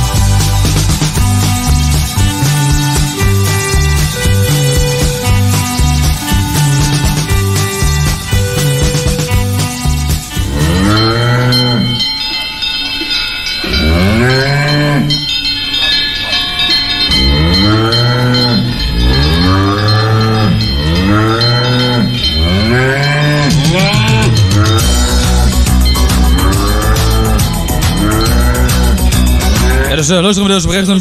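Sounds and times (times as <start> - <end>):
cow-like mooing calls: 10.3 - 12.1, 13.6 - 15.2, 17.1 - 29.9.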